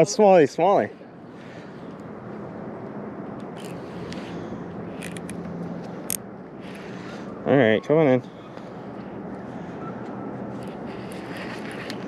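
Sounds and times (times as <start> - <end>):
outdoor noise: 0.0 - 12.0
fishing reel clicks: 5.0 - 5.3.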